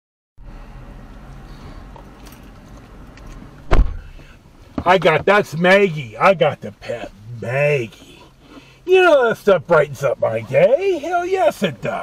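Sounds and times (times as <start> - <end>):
low car interior noise: 0.4 - 12.0
sharp thump: 3.6 - 4.2.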